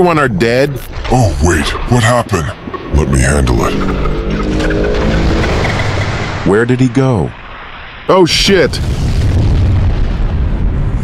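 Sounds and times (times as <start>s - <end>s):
thruster engine drone: 0.0s - 8.2s.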